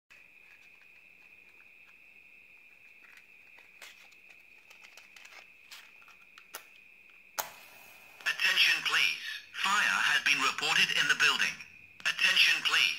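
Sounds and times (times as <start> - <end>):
faint high whine: 0.1 - 12.9
matchbox clicking and rustling: 3.0 - 6.8
match being struck: 7.4 - 8.2.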